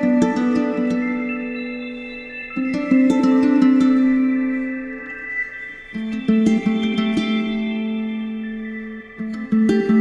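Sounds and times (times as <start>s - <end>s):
plucked guitar music: 0.0s - 10.0s.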